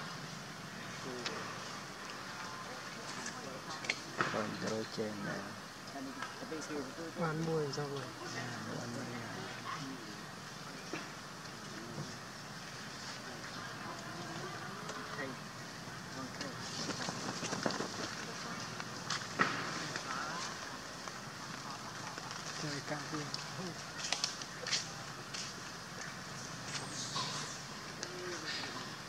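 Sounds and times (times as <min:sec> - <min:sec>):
distant people talking: 0:00.0 - 0:29.0
crackles and rustles: 0:05.6 - 0:29.0.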